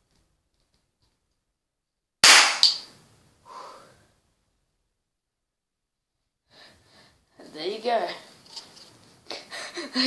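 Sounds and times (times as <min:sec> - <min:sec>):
cap gun bang: 0:02.2 - 0:02.8.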